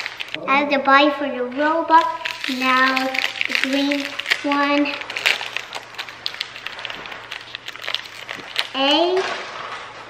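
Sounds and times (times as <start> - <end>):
foil wrapper crinkling and tearing: 0.0 - 0.4, 2.0 - 9.6.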